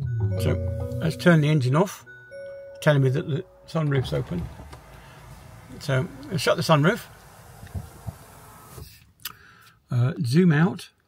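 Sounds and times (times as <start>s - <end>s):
sunroof motor running: 4.0s - 8.8s.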